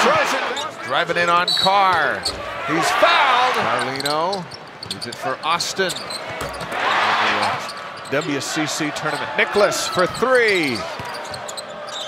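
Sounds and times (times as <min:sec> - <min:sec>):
arena crowd cheering: 0:00.0 - 0:00.8, 0:02.4 - 0:03.9, 0:06.3 - 0:12.0.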